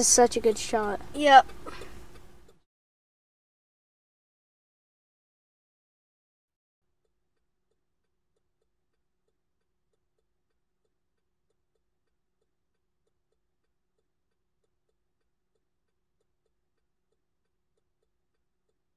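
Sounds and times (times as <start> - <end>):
faint regular ticking: 0.0 - 2.6, 7.0 - 18.9
faint steady hum: 0.0 - 2.6.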